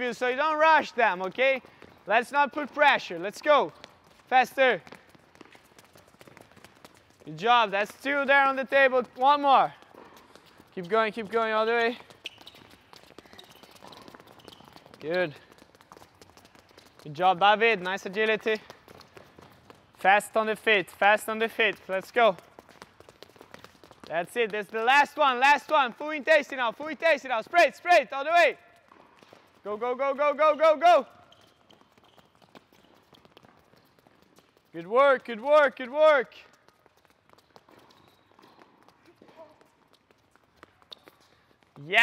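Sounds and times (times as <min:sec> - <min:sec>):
sneakers tapping on court: 0:00.0 - 0:27.3, 0:28.2 - 0:42.0.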